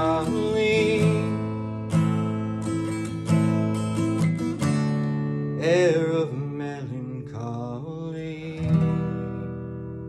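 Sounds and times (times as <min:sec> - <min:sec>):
man singing wordless melody: 0:00.0 - 0:01.9, 0:05.5 - 0:09.5
acoustic guitar notes: 0:00.0 - 0:10.0.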